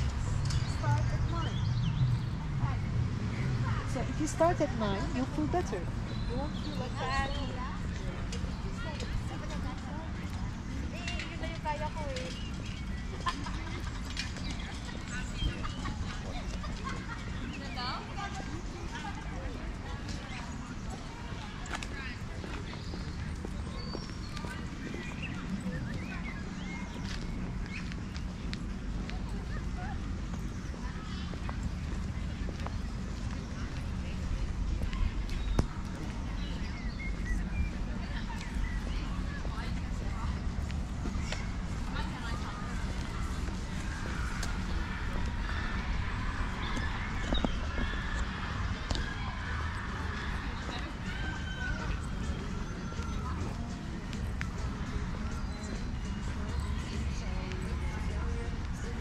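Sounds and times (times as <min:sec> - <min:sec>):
distant people talking: 0:00.0 - 0:59.0
faint distant voices: 0:00.0 - 0:59.0
footsteps on paved path: 0:00.0 - 0:59.0.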